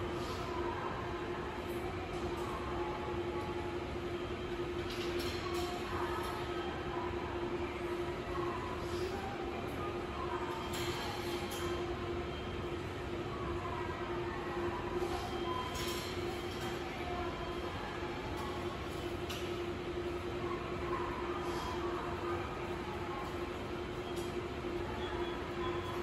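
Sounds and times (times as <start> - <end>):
constant hum: 0.0 - 26.0.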